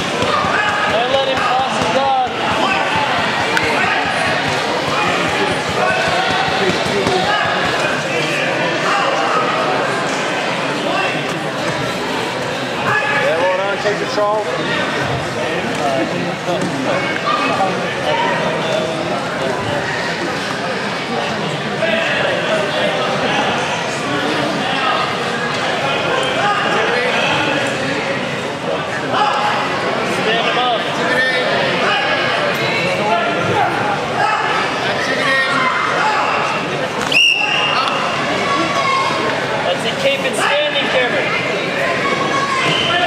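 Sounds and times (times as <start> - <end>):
spectators talking and calling out: 0.0 - 43.0.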